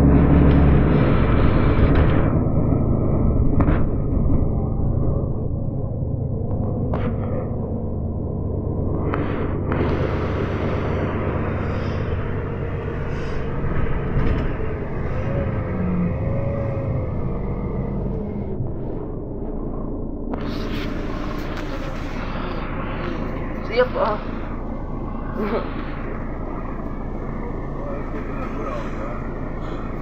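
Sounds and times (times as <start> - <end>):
bus engine rumble: 0.0 - 30.0
faint whine: 0.0 - 30.0.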